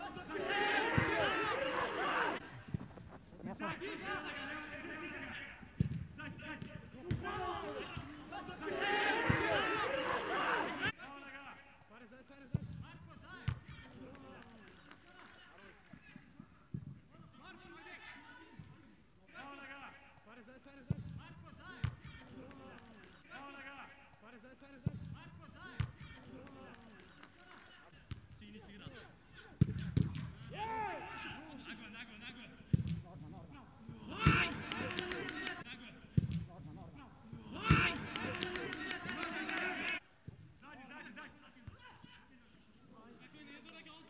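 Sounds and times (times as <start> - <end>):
faint shouts of footballers: 0.0 - 2.7, 3.5 - 11.9, 28.6 - 31.8, 33.5 - 35.7, 36.9 - 40.1, 41.4 - 43.8.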